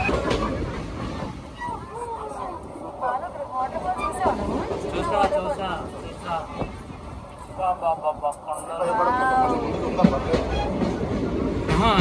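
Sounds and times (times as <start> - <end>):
train rumbling on track: 0.0 - 12.0.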